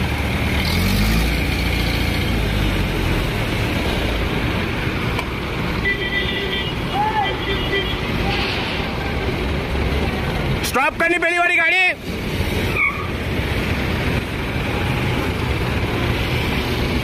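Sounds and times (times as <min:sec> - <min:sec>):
cars and trucks passing: 0:00.0 - 0:17.0.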